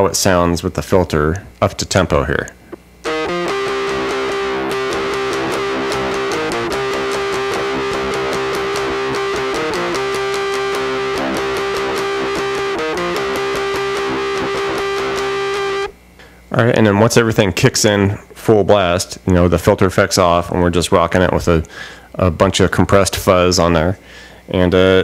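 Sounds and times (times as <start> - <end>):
electric guitar strummed chords: 3.0 - 16.0.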